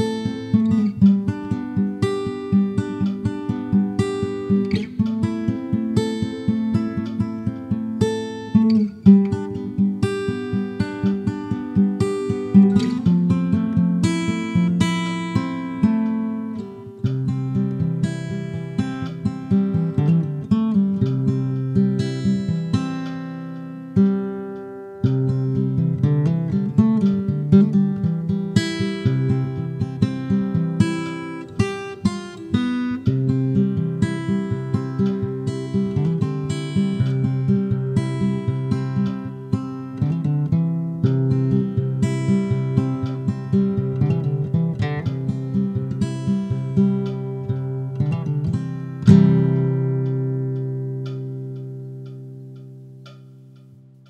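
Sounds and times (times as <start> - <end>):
acoustic guitar music: 0.0 - 54.0.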